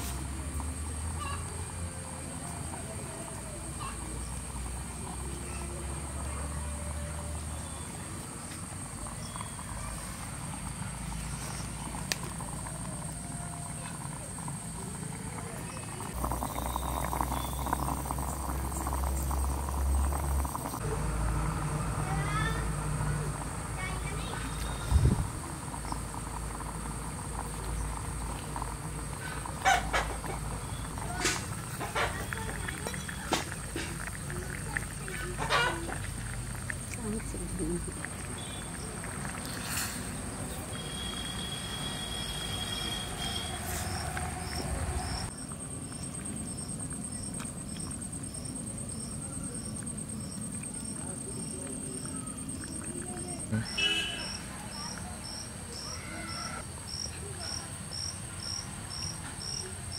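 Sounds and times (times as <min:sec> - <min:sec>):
faint indistinct voices: 0:00.0 - 0:26.6, 0:49.0 - 0:57.9.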